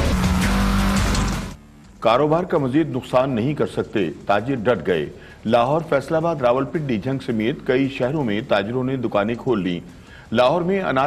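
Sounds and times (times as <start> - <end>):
news intro music: 0.0 - 3.1.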